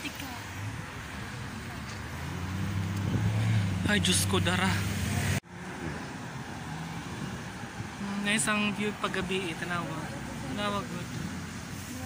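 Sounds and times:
traffic rushing: 0.0s - 12.0s
loud low engine hum: 0.7s - 12.0s.

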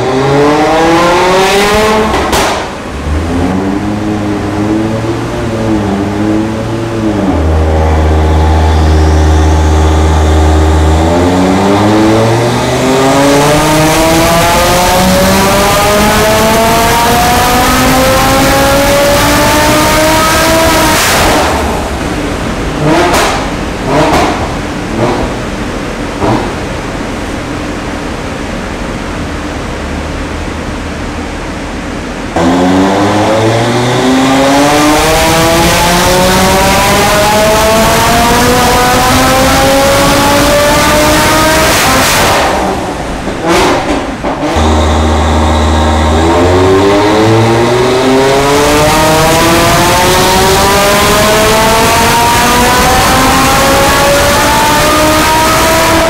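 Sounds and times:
car engine revving on dyno: 0.0s - 56.0s
sharp exhaust pops: 21.1s - 25.5s.

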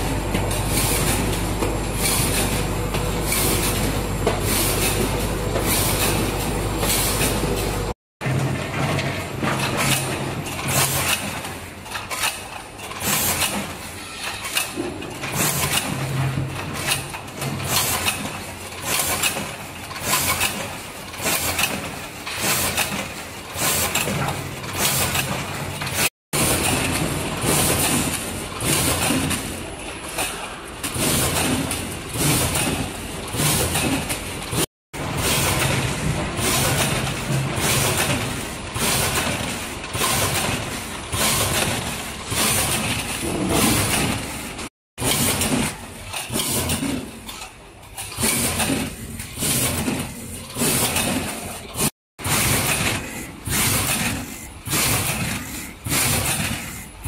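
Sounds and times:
mechanical hum: 0.0s - 57.0s
packing machine clatter: 0.0s - 57.0s.

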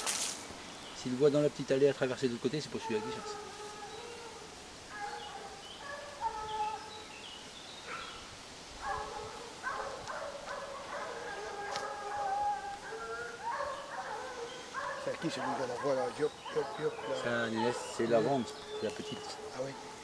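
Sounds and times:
hounds baying: 2.5s - 7.1s, 7.8s - 8.2s, 8.8s - 20.0s.

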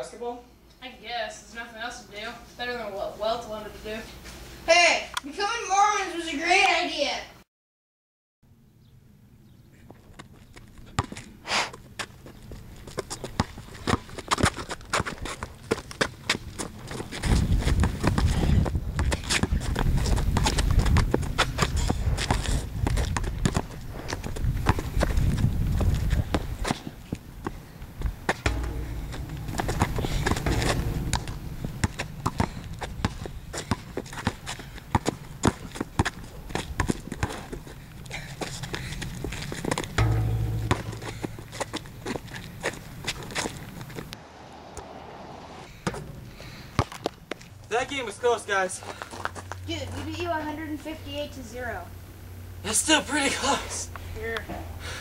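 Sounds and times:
basketball bouncing on concrete: 28.4s - 37.5s, 39.9s - 42.3s, 45.8s - 47.4s
low rumble: 28.5s - 34.0s, 40.0s - 43.0s.

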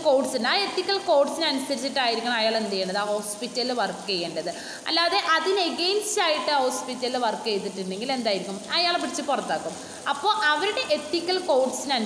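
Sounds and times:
woman lecturing: 0.0s - 12.0s.

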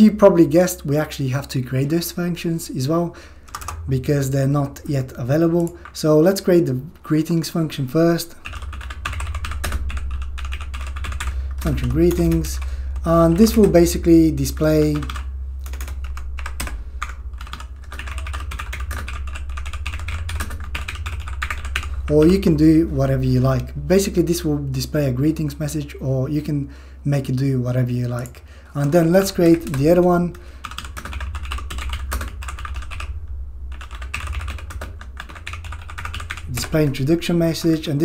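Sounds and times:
steady low hum: 0.0s - 38.0s
keyboard typing: 3.4s - 3.9s, 8.3s - 14.0s, 14.6s - 23.7s, 30.6s - 33.1s, 33.7s - 37.9s.

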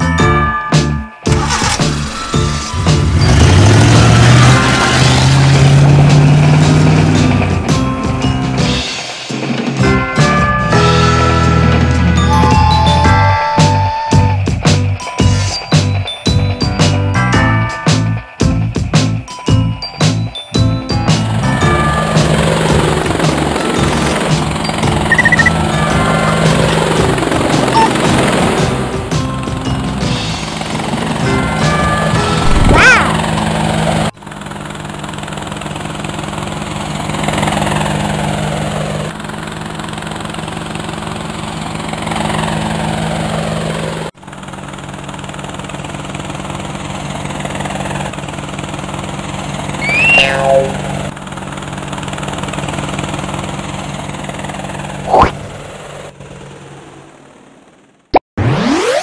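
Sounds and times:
background music: 0.0s - 33.4s
cartoon helicopter rotor chop: 1.3s - 7.7s, 21.0s - 29.2s, 30.1s - 57.8s, 58.4s - 59.0s.

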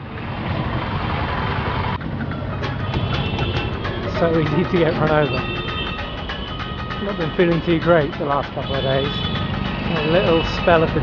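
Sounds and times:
auto-rickshaw engine: 0.0s - 11.0s
street traffic engines: 0.0s - 11.0s.

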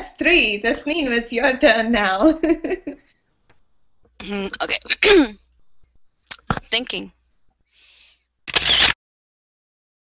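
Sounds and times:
faint hiss: 7.7s - 8.2s
camera shutter click: 8.5s - 9.0s.

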